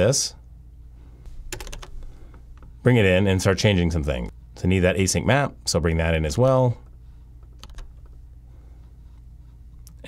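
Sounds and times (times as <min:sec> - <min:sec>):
keyboard keystrokes: 0:01.5 - 0:02.0, 0:07.4 - 0:08.2.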